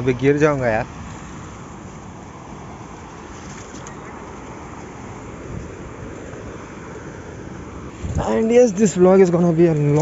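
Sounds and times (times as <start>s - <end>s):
wind noise on microphone: 5.2s - 9.2s.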